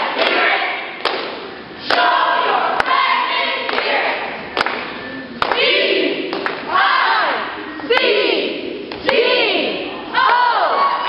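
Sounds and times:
whooping voices: 5.0s - 11.0s
cheerleaders yelling in unison: 5.5s - 11.0s.

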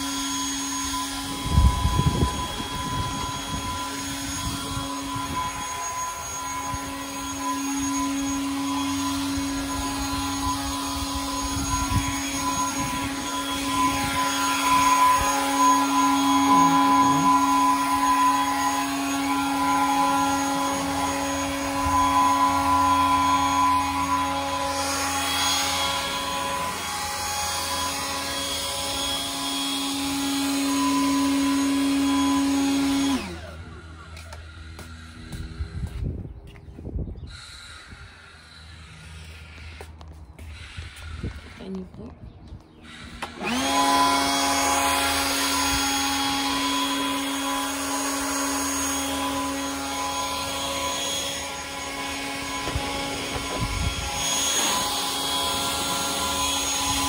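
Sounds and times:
leaf blower whine: 0.0s - 57.0s.

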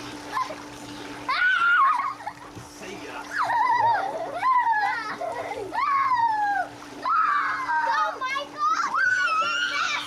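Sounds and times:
water splashing in pool: 0.0s - 10.0s
children shrieking: 1.3s - 2.4s, 3.3s - 10.0s.

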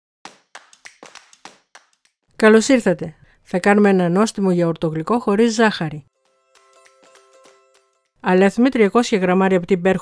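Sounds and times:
sharp claps or taps: 0.3s - 2.2s.

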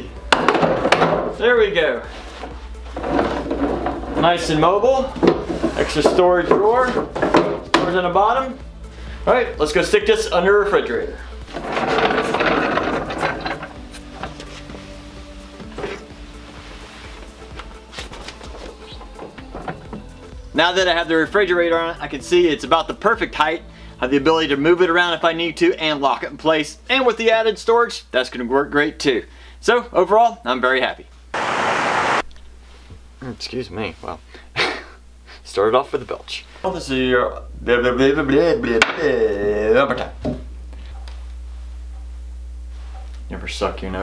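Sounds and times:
cart casters rattling on floor: 11.5s - 13.8s
static-like hiss burst: 31.3s - 32.3s.

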